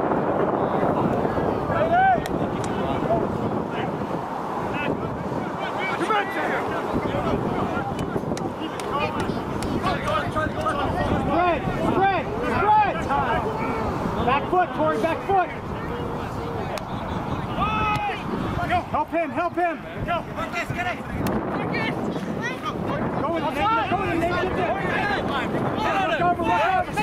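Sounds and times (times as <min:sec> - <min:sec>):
voices shouting and calling out: 0:00.0 - 0:27.0.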